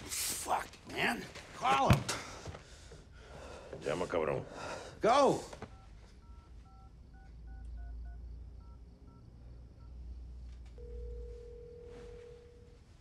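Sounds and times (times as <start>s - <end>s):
touch-tone dialing beeps: 5.7s - 9.2s
phone ringback tone: 10.8s - 13.0s.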